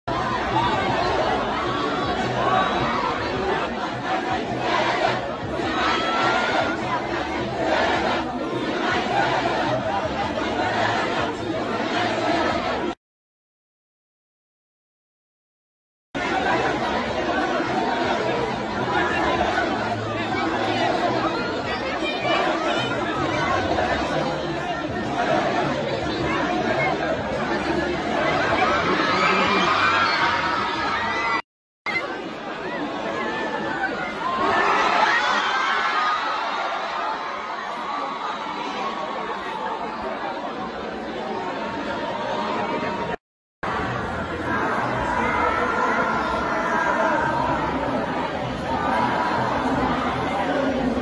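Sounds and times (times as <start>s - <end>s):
large crowd talking: 0.1s - 13.0s, 16.1s - 51.0s.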